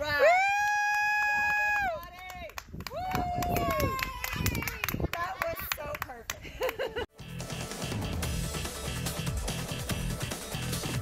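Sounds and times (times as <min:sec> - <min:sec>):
high-pitched voices cheering: 0:02.9 - 0:05.0.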